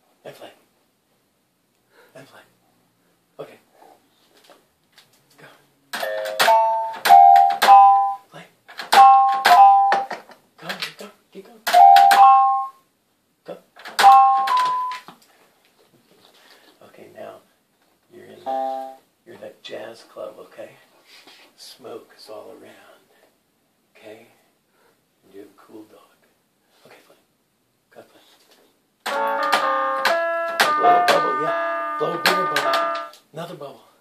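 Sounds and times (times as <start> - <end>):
toy keyboard notes: 6.0 - 8.2, 8.8 - 10.2, 11.7 - 12.8, 13.9 - 15.1, 18.5 - 19.0, 29.0 - 33.2.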